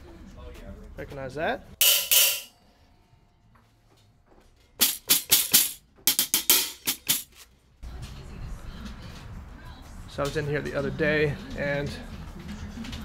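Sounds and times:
drumstick striking jingle cymbal: 1.8 - 2.5, 4.8 - 7.2.

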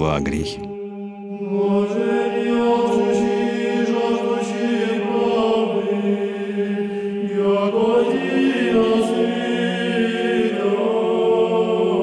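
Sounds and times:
choir singing a slow chant: 0.6 - 12.0.

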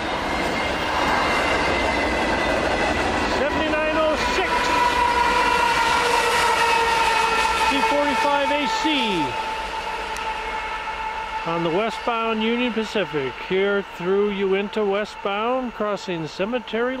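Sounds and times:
freight train passing: 0.0 - 17.0
wheels rumbling on rails: 0.0 - 17.0.

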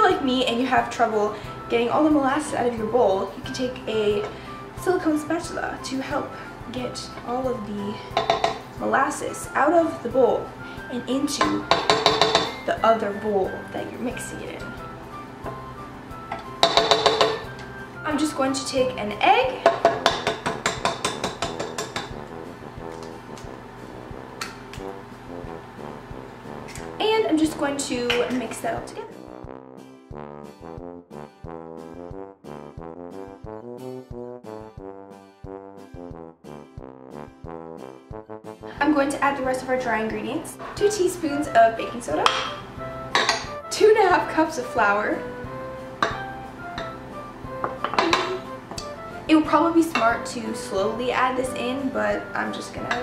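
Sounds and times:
quiet background music: 0.0 - 30.7, 38.5 - 53.0
bowl clinking against mixer bowl: 8.1 - 8.7, 11.4 - 12.7, 16.3 - 17.5, 19.6 - 22.2, 42.2 - 43.6, 47.6 - 48.5.

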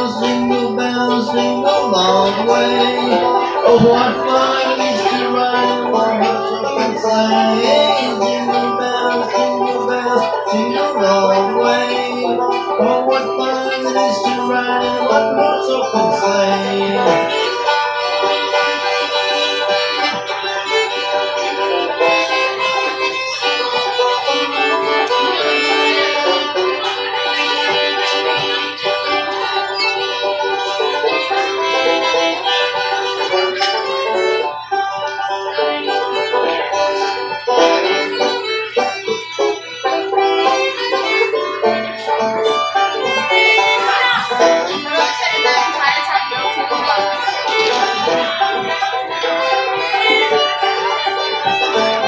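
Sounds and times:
bowed fiddle notes: 0.0 - 52.0
picked banjo notes: 0.0 - 52.0.

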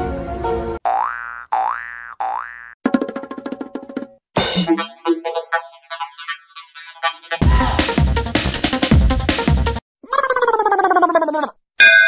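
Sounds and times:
cartoon music track: 4.4 - 7.7.

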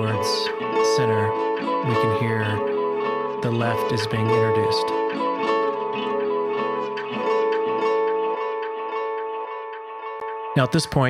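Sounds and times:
plucked string melody with echoes: 0.0 - 11.0.

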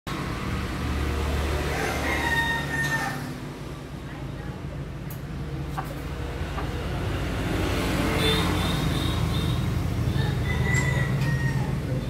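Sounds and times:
rooster crowing: 1.6 - 3.4, 10.1 - 12.0.

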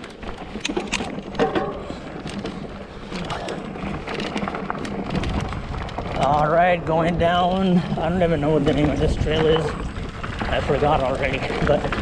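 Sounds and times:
bike clicks and rattles: 0.0 - 12.0
bike tyres crunching on gravel: 0.0 - 12.0
wind rumble on microphone: 0.0 - 12.0.

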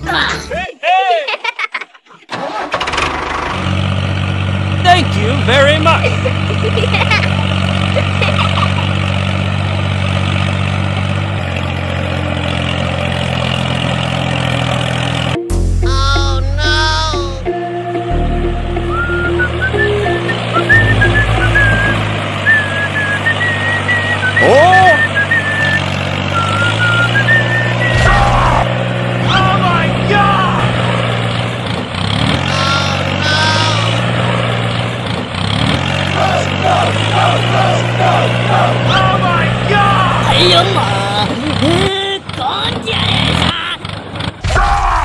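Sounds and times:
tractor engine: 0.0 - 45.0
background music with melody and bass: 15.0 - 23.8
swooping cartoon sound: 27.7 - 28.7.

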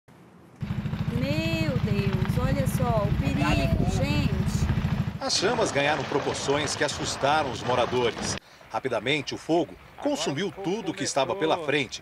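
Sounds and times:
helicopter rotor beating: 0.6 - 8.4.

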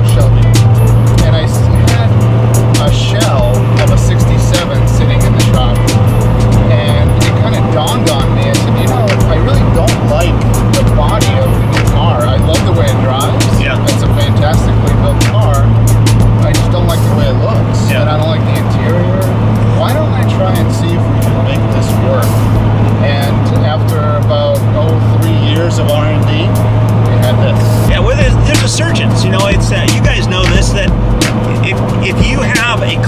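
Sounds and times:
people talking: 0.0 - 2.2, 2.8 - 15.7, 16.4 - 22.4, 23.0 - 33.0
background music: 0.0 - 33.0
car engine drone: 0.0 - 33.0
road noise: 0.0 - 33.0.

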